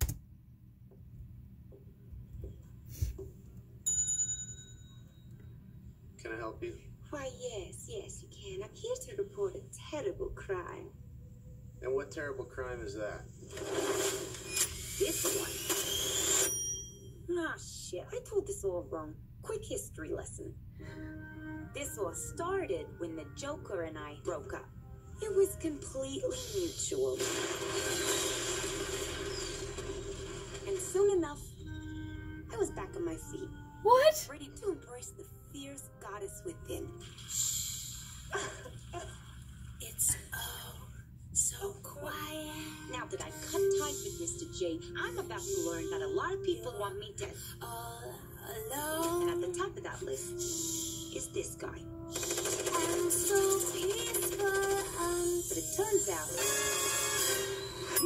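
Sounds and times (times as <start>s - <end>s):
bright high chime: 15.6s - 17.2s, 57.4s - 58.0s.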